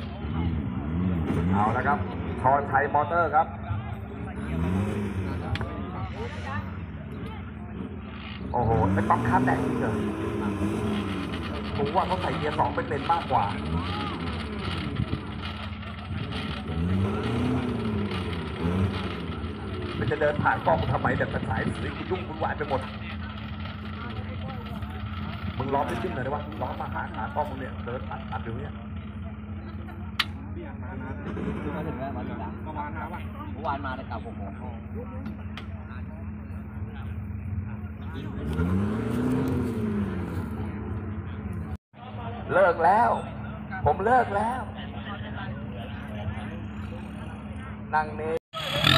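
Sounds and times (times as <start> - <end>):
pickup engine revving: 0.0 - 3.4, 4.0 - 7.0, 7.6 - 35.1, 37.7 - 41.8, 48.1 - 48.9.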